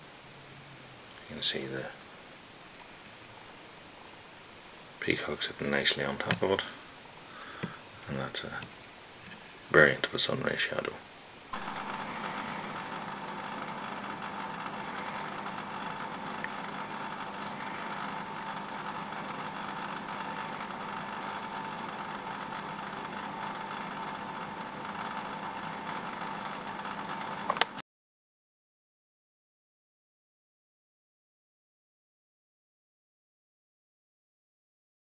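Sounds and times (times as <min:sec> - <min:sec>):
small electric motor humming: 0:11.5 - 0:27.8.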